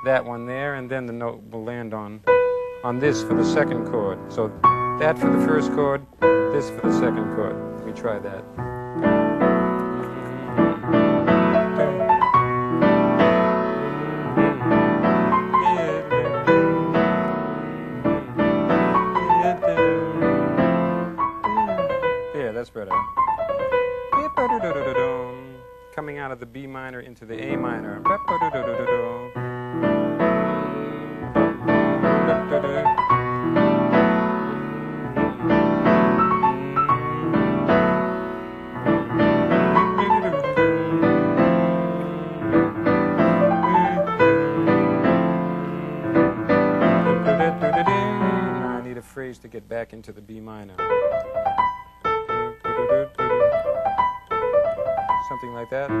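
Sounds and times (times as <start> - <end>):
piano melody: 0.0 - 49.2, 50.7 - 56.0
keyboard playing: 2.2 - 26.3, 27.4 - 49.0, 50.8 - 56.0.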